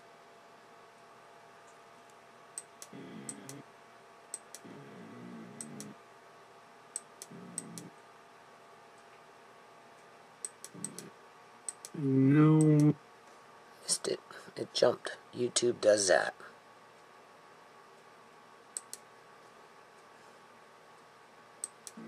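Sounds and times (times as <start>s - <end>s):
computer mouse clicks: 4.3s - 4.7s, 6.9s - 7.9s, 10.4s - 11.1s, 11.7s - 12.0s, 18.8s - 19.1s, 21.6s - 22.0s
person's voice holding a sound: 11.9s - 13.0s, 13.8s - 16.5s.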